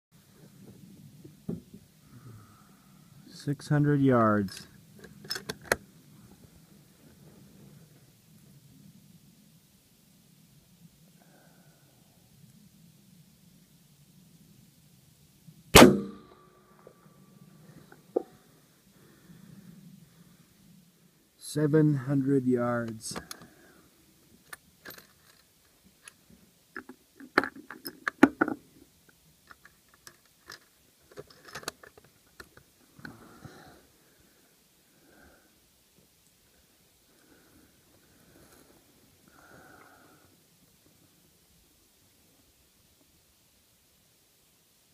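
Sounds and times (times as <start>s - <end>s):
faint hiss: 0.2s - 44.9s
rifle shot: 15.7s - 16.4s.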